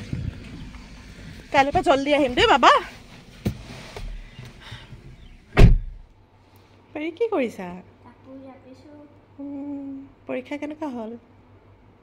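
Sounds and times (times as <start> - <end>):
heavy thump: 5.5 - 6.1.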